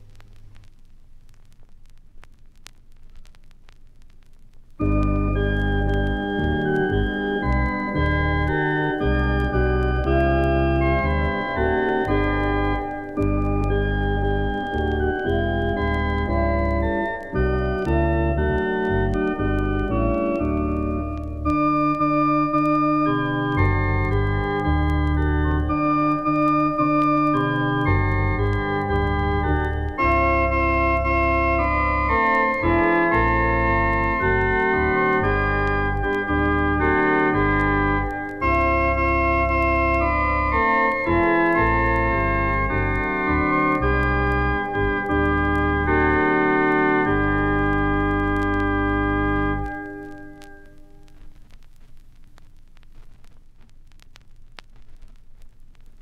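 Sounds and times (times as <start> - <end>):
organ playing slow chords: 4.8 - 51.0.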